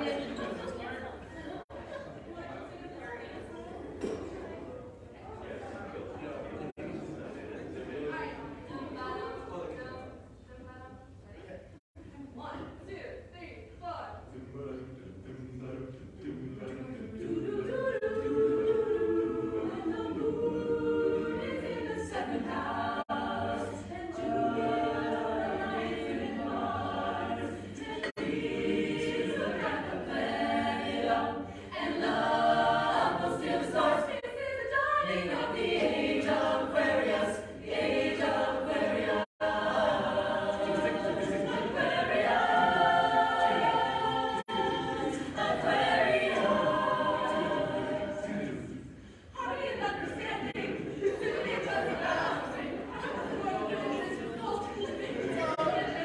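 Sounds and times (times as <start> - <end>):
a cappella group singing: 0.0 - 2.1, 14.2 - 56.0.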